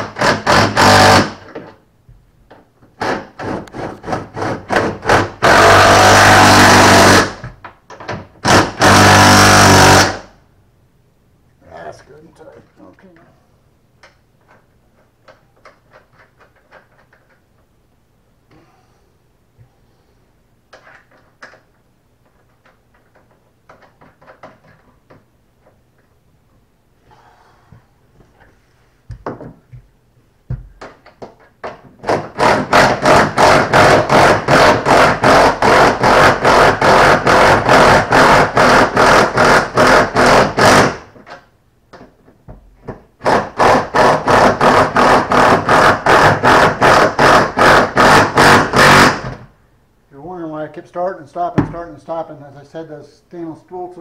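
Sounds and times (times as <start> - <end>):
impact driver hammering: 0.0 - 1.6, 3.0 - 10.3, 30.5 - 41.2, 42.9 - 49.5.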